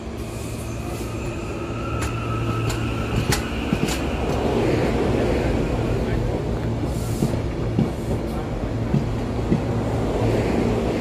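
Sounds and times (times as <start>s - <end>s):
train rumbling over track: 0.0s - 11.0s.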